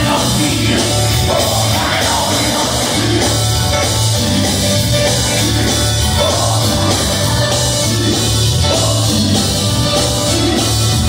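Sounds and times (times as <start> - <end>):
live gospel band music: 0.0 - 11.0.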